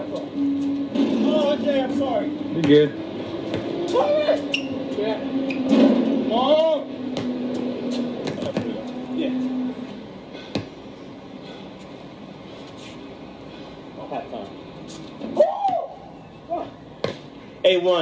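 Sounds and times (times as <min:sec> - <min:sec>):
men talking: 0:00.0 - 0:00.4, 0:01.0 - 0:07.2, 0:07.9 - 0:10.0, 0:13.8 - 0:15.0, 0:16.4 - 0:18.0.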